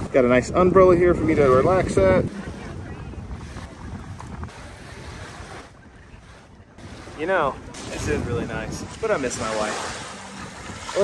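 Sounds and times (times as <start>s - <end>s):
wind blowing across microphone: 0.0s - 11.0s
waves washing on beach: 1.2s - 11.0s.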